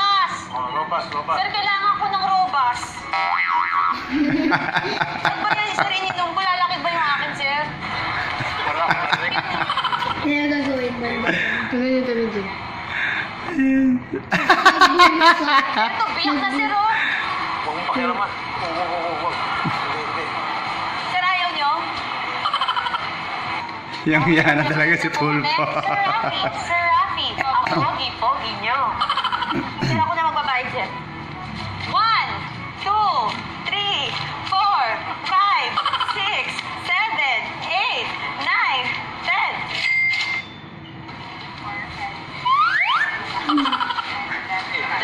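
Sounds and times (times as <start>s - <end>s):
supermarket background noise: 28.7s - 40.5s.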